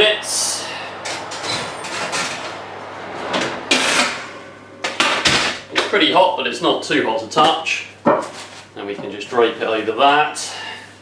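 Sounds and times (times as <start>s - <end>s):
oven door and rack clatter: 1.0s - 6.0s.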